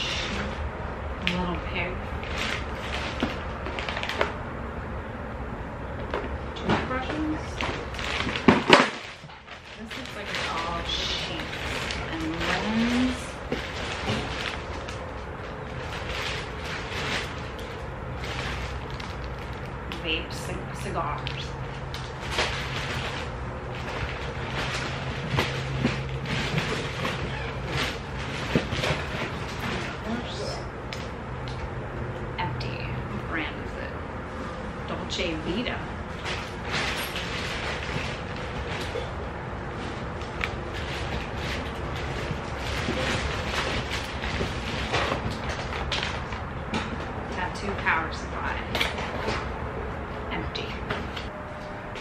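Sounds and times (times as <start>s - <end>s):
plastic garbage bag rustling: 0.0s - 4.5s, 5.9s - 31.5s, 35.5s - 49.6s.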